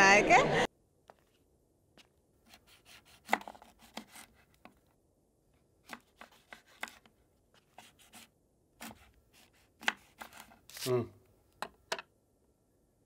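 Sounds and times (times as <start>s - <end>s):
knife chopping on cutting board: 2.4s - 4.8s, 5.8s - 7.1s, 7.7s - 10.8s.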